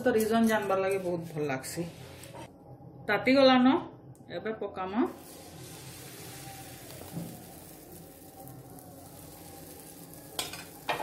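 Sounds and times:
batter sizzling in a frying pan: 5.1s - 11.0s.

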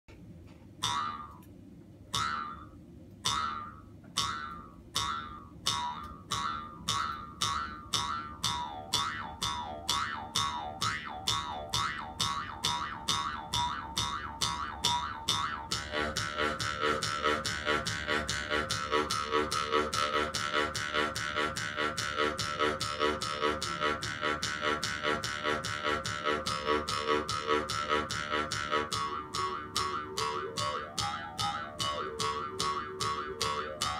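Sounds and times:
mouth harp twangs: 0.8s - 1.5s, 2.1s - 33.9s.

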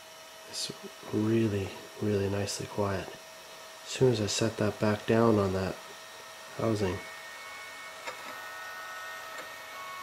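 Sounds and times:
cooling fan whine: 0.0s - 10.0s.

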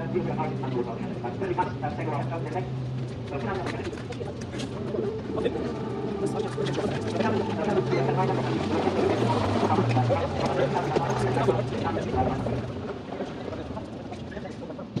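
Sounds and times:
indistinct conversation: 0.0s - 15.0s.

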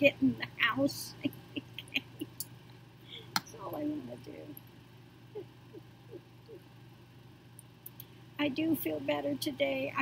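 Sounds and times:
low steady hum: 0.0s - 10.0s
woman chuckling softly: 1.2s - 2.4s.

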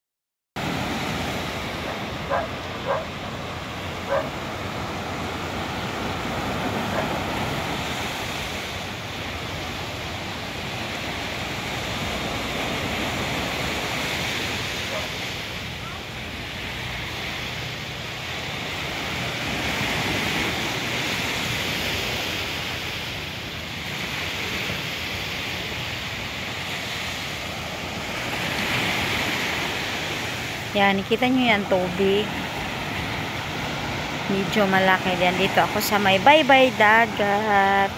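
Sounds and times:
surf rushing: 0.6s - 37.9s.

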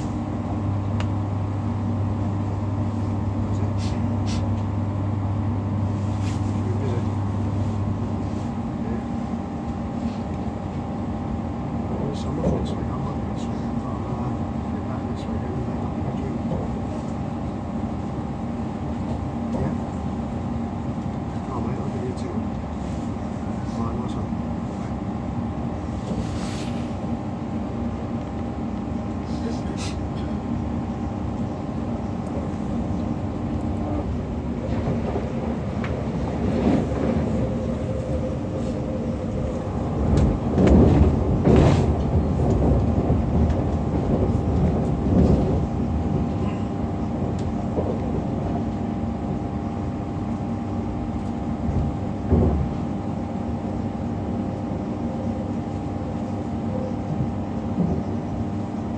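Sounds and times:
electric traction hum: 0.0s - 58.9s
train wheels rumbling on rails: 11.9s - 58.8s.

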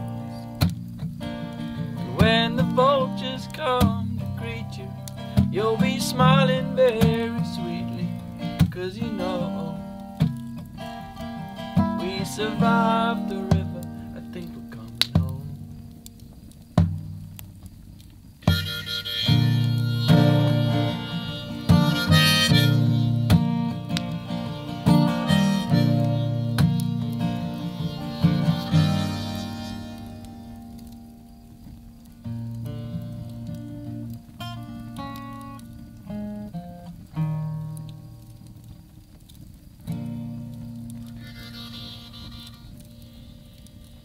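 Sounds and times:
acoustic guitar strumming: 0.0s - 17.3s, 18.4s - 38.7s, 39.8s - 44.0s.

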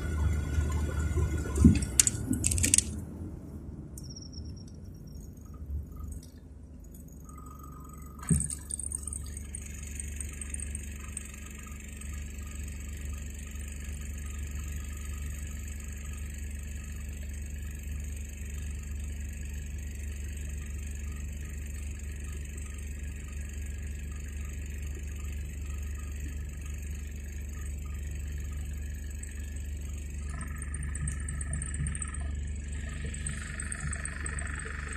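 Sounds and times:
car engine rumbling: 0.0s - 10.2s.

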